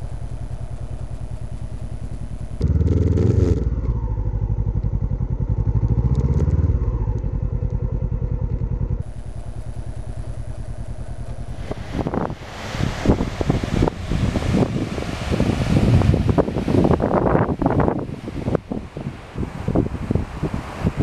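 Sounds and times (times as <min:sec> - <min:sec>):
motorcycle engine idling: 0:00.0 - 0:21.0
surf: 0:11.2 - 0:21.0
wind buffeting microphone: 0:11.3 - 0:21.0.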